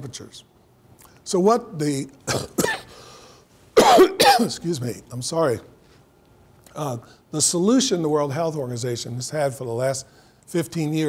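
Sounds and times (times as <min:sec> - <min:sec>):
man coughing: 0:02.3 - 0:03.0, 0:03.8 - 0:04.6.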